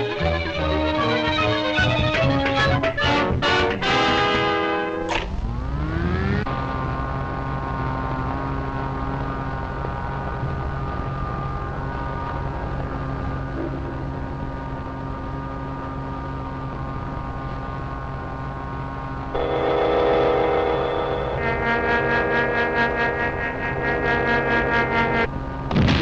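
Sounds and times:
electric drone of held tones: 0:00.0 - 0:25.4
low hum: 0:03.2 - 0:26.0
loud full tone: 0:19.3 - 0:26.0.

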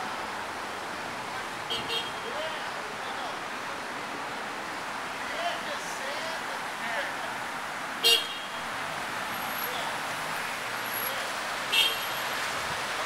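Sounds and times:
street traffic: 0:00.0 - 0:13.0
car horn toots: 0:01.7 - 0:02.3, 0:08.0 - 0:08.6, 0:11.7 - 0:12.2.

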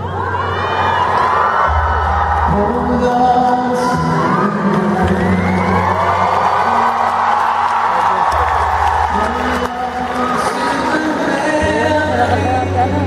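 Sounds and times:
audience cheering and whooping: 0:00.0 - 0:11.8
live acoustic guitar music: 0:08.3 - 0:13.0.

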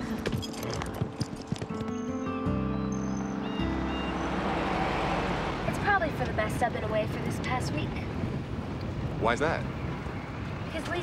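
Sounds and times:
horses' hooves clip-clopping: 0:00.0 - 0:02.3
film-score music of sustained chords: 0:00.0 - 0:06.6.

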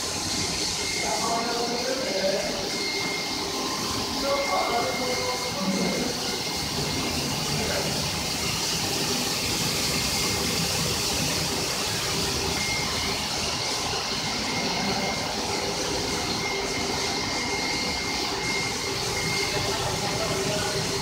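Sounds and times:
carpet washing machine scrubbing: 0:00.0 - 0:21.0
high-pitched whine: 0:00.0 - 0:21.0.

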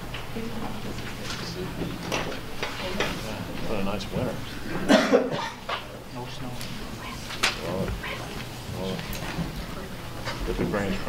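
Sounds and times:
person coughing: 0:04.7 - 0:05.7.

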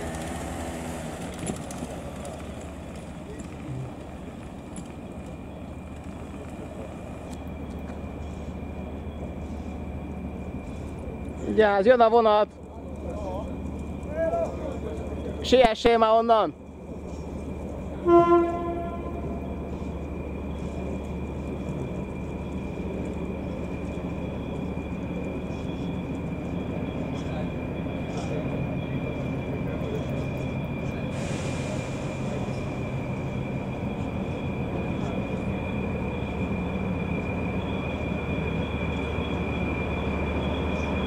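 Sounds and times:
distant locomotive rumble: 0:00.0 - 0:41.0
thin high whine: 0:00.0 - 0:41.0.

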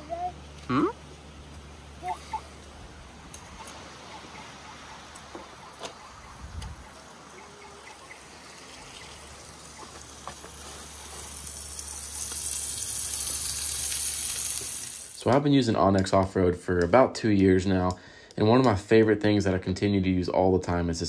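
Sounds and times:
steak sizzling in a frying pan: 0:08.2 - 0:15.2.

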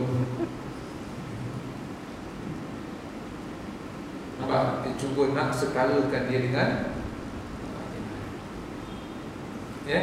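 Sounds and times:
room background noise: 0:00.0 - 0:10.0.

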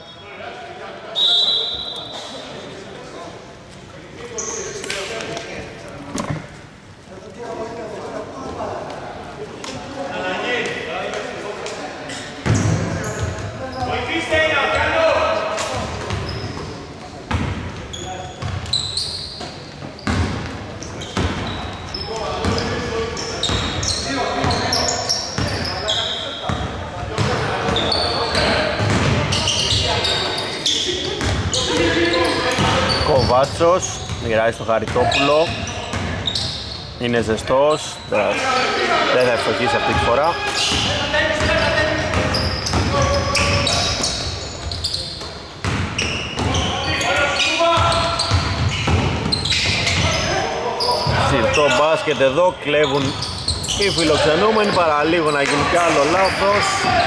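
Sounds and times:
players calling out: 0:20.8 - 0:57.0.

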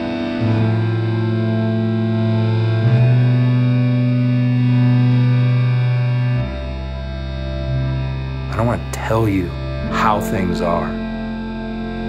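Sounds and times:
distorted guitar sustained notes: 0:00.0 - 0:12.0.

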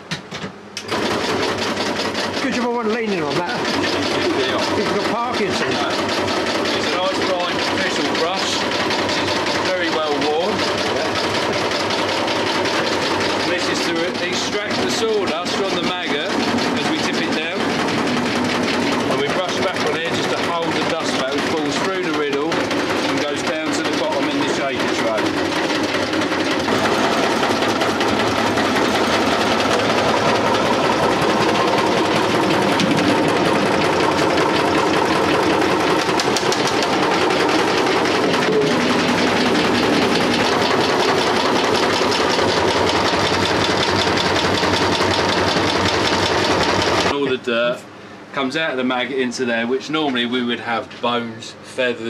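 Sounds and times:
vibrating riddle shaker running: 0:01.0 - 0:47.2.

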